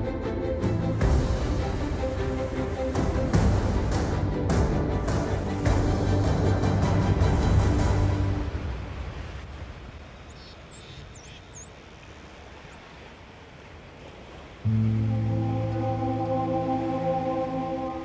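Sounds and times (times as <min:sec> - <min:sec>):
soundtrack music: 0:00.0 - 0:09.0, 0:14.7 - 0:18.0
low sustained music chord: 0:14.6 - 0:18.0.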